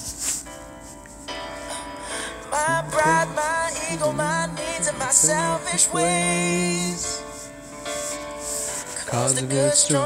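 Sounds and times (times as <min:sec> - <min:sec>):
piano chords: 0:00.3 - 0:10.0.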